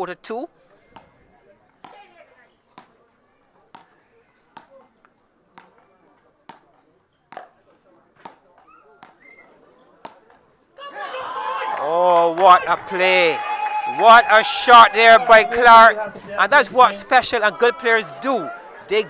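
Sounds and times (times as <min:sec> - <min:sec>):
paddles knocking a ball: 0:01.8 - 0:02.1, 0:06.4 - 0:07.6, 0:08.2 - 0:09.3
crowd cheering and shouting: 0:10.8 - 0:19.0.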